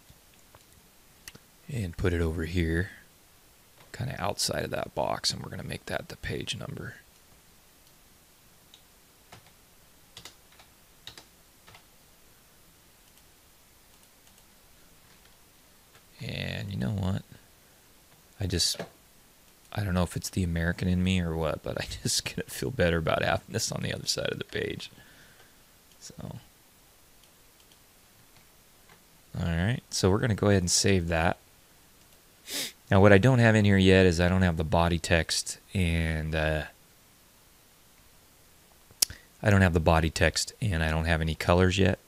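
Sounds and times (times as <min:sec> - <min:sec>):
faint keyboard clicks: 0:08.7 - 0:09.6, 0:10.2 - 0:11.9, 0:13.9 - 0:16.1, 0:27.2 - 0:29.0.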